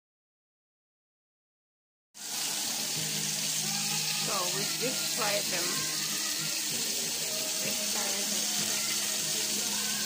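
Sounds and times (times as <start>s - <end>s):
oil sizzling with frying fish: 2.2s - 10.0s.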